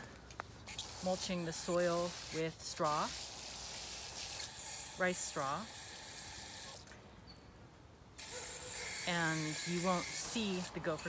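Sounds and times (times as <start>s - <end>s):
hose water spraying on soil: 0.6s - 6.9s, 8.2s - 11.0s.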